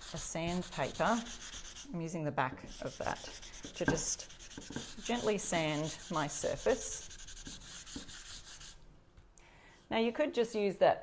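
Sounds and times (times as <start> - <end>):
hand sanding wooden board: 0.0 - 1.9, 2.6 - 8.8.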